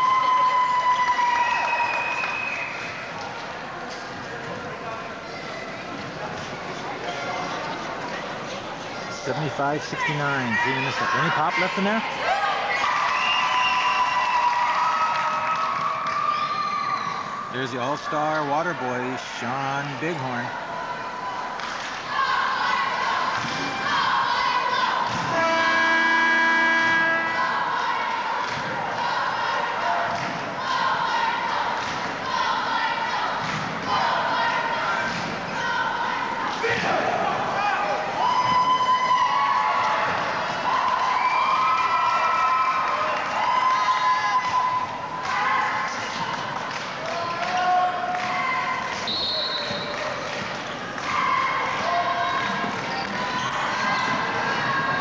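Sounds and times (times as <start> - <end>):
crowd voices in gym: 0.0 - 55.0
arena buzzer tone: 25.2 - 27.6.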